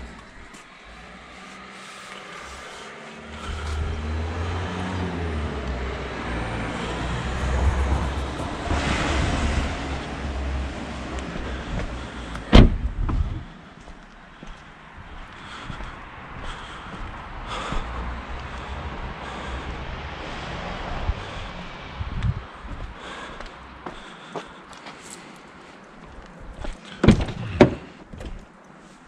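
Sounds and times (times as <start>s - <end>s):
rustling of movement: 0.0s - 4.1s
car door slamming: 12.4s - 13.5s, 27.0s - 28.4s.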